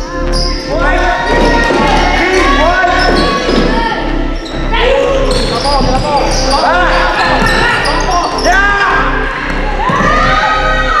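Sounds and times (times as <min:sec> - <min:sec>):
echoing voices: 0:00.0 - 0:11.0
sneakers squeaking on court: 0:02.9 - 0:04.6, 0:05.2 - 0:08.5.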